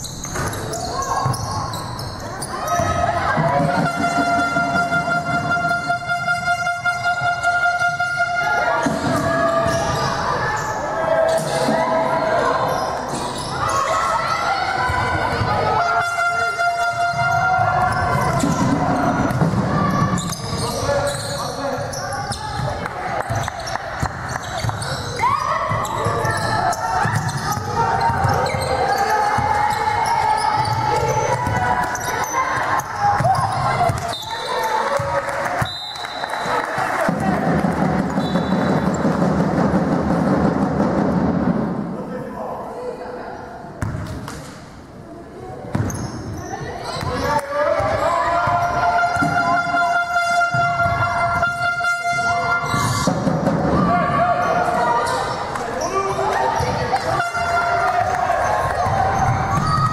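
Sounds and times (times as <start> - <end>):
echoing voices: 0.0 - 40.2, 44.4 - 59.9
basketball bouncing on court: 22.2 - 35.7, 43.8 - 44.4, 45.7 - 49.8, 56.4 - 59.9.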